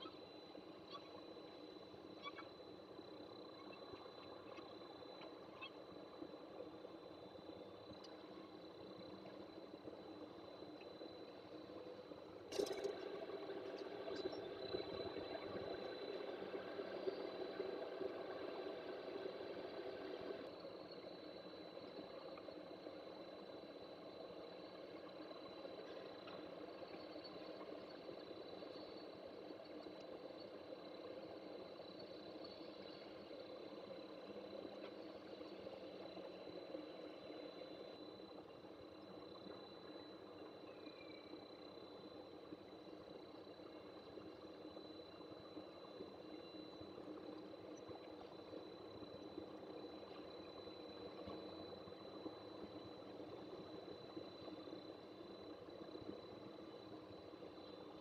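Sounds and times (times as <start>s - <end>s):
mechanical hum with high whine: 0.0s - 58.0s.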